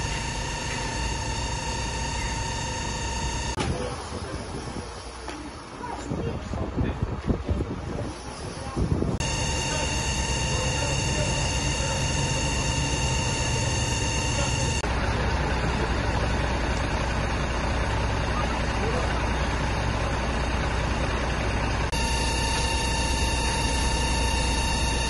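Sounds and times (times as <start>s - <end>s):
diesel engine droning with whine: 0.0s - 25.0s.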